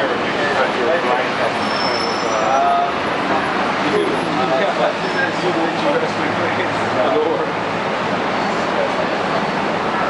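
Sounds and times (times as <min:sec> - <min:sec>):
buses and cars passing: 0:00.0 - 0:10.0
passers-by talking: 0:00.0 - 0:10.0.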